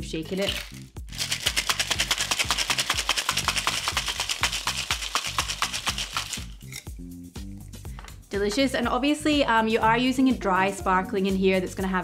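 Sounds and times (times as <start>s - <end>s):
background music: 0.0s - 12.0s
ice rattling in cocktail shaker: 0.2s - 6.8s.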